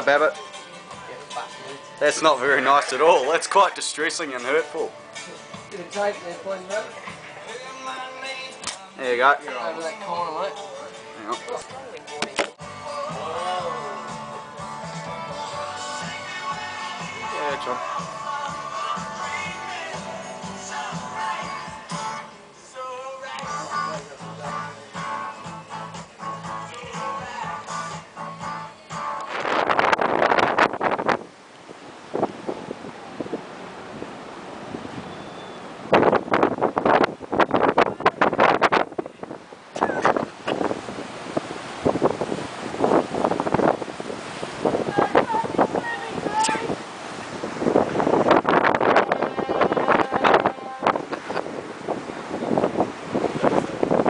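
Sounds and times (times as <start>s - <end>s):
rough sea water rushing along hull: 0.0s - 54.0s
wind buffeting microphone: 29.2s - 54.0s.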